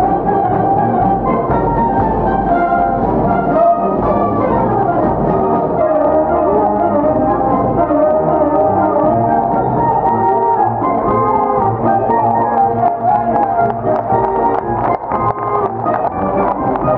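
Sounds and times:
brass band playing: 0:00.0 - 0:16.9.

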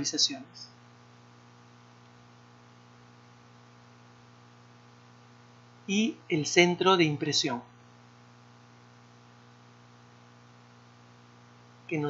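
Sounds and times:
faint hiss: 0:00.0 - 0:12.0
low electrical hum: 0:00.0 - 0:12.0.

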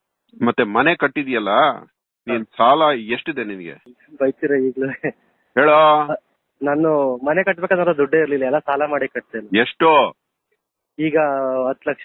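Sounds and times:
man talking: 0:00.4 - 0:10.2, 0:11.0 - 0:12.0.

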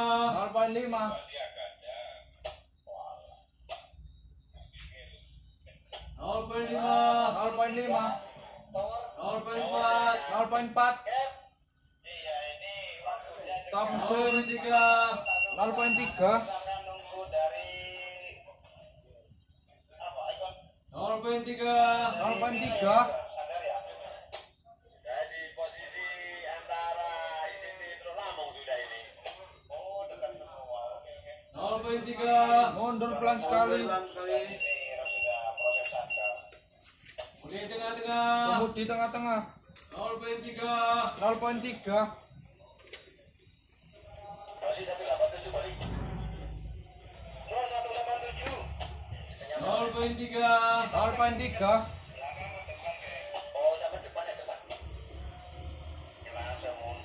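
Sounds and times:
indistinct men's voices: 0:44.0 - 0:57.0.

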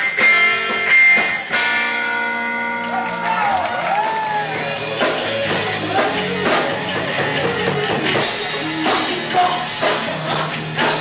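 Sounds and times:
electric guitar: 0:00.0 - 0:11.0.

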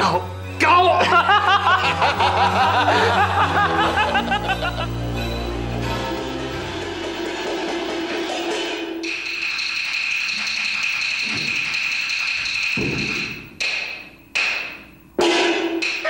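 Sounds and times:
sharp percussion strikes: 0:04.0 - 0:16.0
gongs cymbals and drum: 0:06.6 - 0:16.0.

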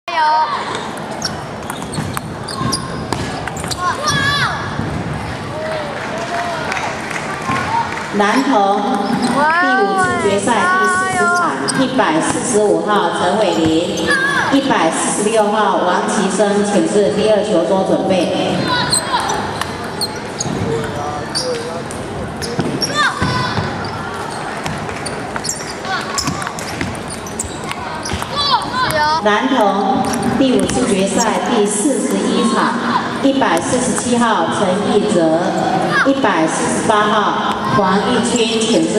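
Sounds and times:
crowd chatter: 0:00.1 - 0:38.9
children's voices: 0:03.7 - 0:05.5, 0:09.2 - 0:11.8, 0:13.7 - 0:14.6, 0:18.2 - 0:20.4, 0:22.9 - 0:24.3, 0:25.7 - 0:26.6, 0:27.6 - 0:38.9.

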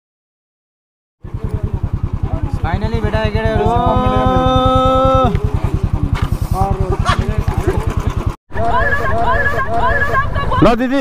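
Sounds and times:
motorcycle engine idling: 0:01.2 - 0:10.5
voices chattering: 0:01.2 - 0:11.0
held tone: 0:08.6 - 0:10.7.

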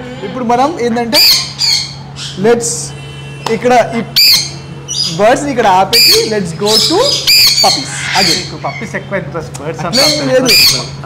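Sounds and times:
parrots screeching: 0:00.1 - 0:09.1, 0:09.9 - 0:11.0
person speaking: 0:04.8 - 0:11.0.

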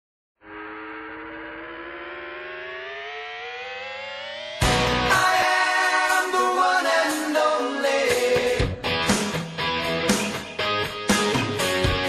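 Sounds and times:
rising synthesizer tone: 0:00.4 - 0:05.5.

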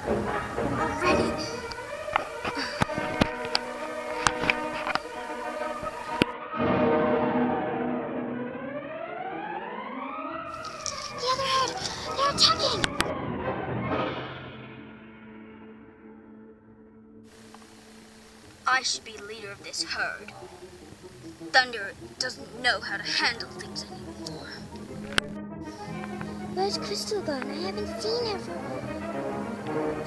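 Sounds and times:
dramatic trailer music: 0:00.0 - 0:17.2, 0:20.2 - 0:30.0.

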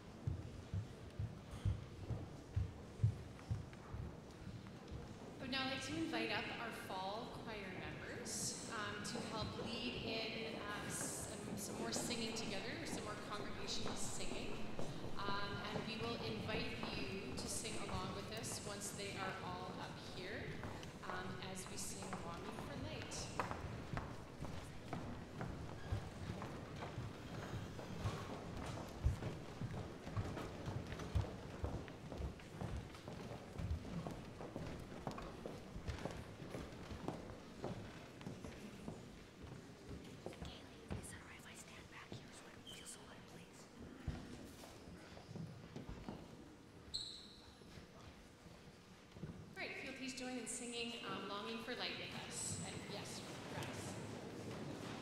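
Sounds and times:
footsteps of group walking: 0:00.0 - 0:05.5, 0:09.3 - 0:42.3, 0:43.8 - 0:49.6, 0:52.4 - 0:55.0
hall room noise: 0:00.0 - 0:55.0
low murmur of voices: 0:00.0 - 0:55.0
woman speaking: 0:05.4 - 0:23.4, 0:49.6 - 0:54.0.

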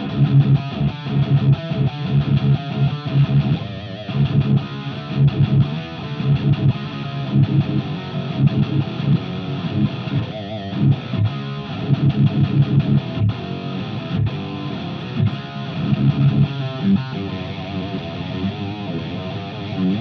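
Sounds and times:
electric guitar riff: 0:00.0 - 0:20.0.

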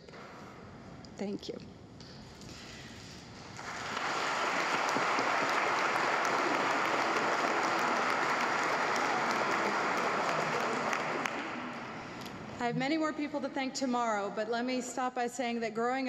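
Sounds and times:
congregation applauding: 0:03.6 - 0:12.2.

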